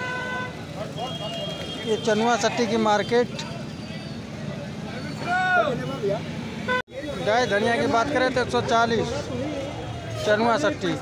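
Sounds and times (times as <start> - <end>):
crowd chatter: 0.0 - 11.0
traffic: 0.0 - 11.0.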